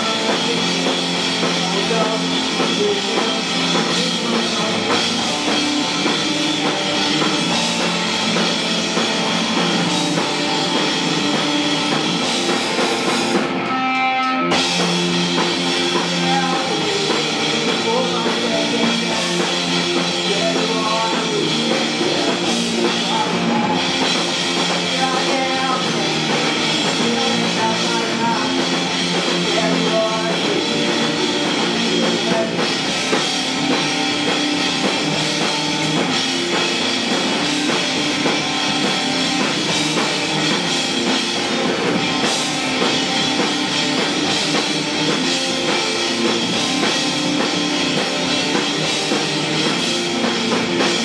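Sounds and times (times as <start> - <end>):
person singing: 0.0 - 8.2, 15.3 - 33.2
drum kit: 0.0 - 51.0
electric guitar: 0.0 - 51.0.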